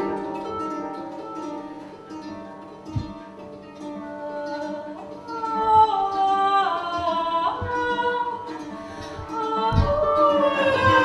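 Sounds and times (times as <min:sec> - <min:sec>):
plucked harp: 0:00.0 - 0:11.0
woman singing held notes: 0:09.3 - 0:11.0.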